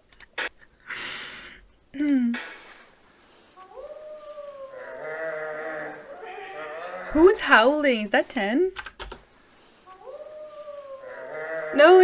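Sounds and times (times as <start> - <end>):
man imitating wolf howl: 3.7 - 7.1, 10.0 - 11.9.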